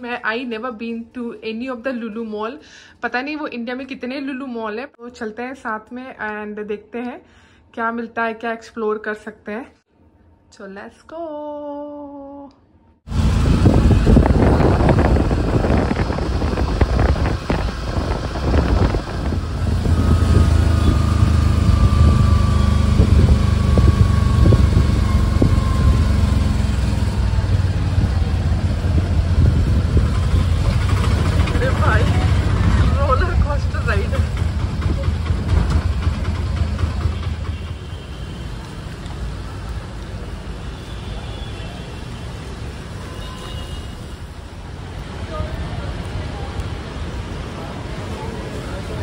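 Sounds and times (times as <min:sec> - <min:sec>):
traffic rumble: 0:13.1 - 0:49.0.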